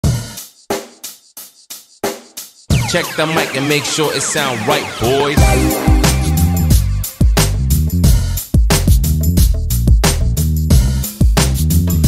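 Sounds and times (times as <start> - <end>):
sharp drum hits: 5.4 - 7.6
deep kick drum: 5.4 - 11.4.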